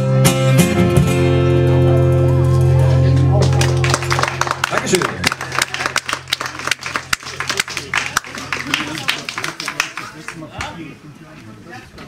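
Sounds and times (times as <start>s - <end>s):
low hum from speakers: 1.6s - 12.0s
sparse applause: 3.1s - 10.8s.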